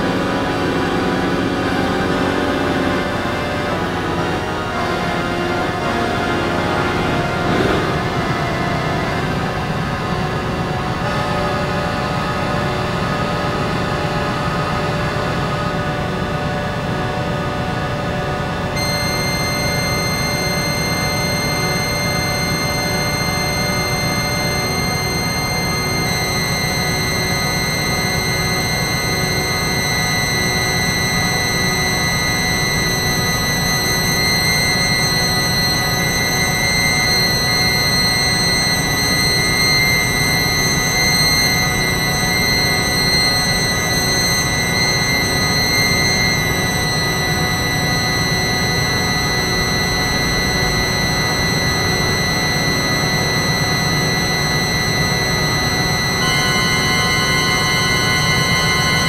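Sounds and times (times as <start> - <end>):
electronic drone: 0.0 - 13.9, 18.7 - 59.0
high whining tones: 6.7 - 9.3, 18.8 - 59.0.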